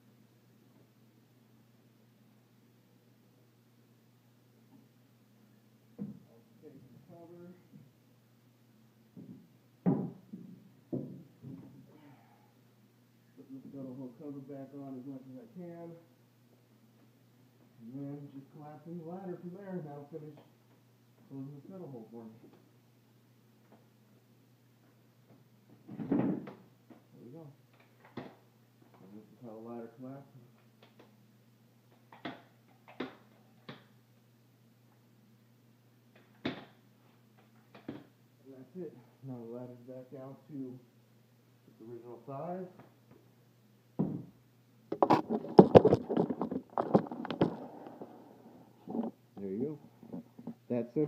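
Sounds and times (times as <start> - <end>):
ladder thumping down: 25.8 - 26.6.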